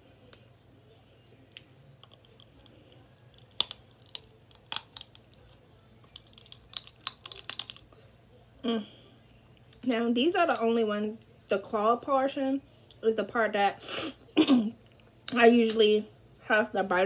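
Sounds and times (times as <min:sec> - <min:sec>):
crab shells cracking: 0:01.5 - 0:07.9.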